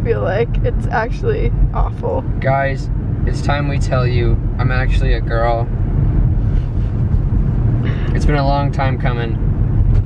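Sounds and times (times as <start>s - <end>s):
car engine rumble: 0.0s - 10.0s
tyre road noise: 0.0s - 10.0s.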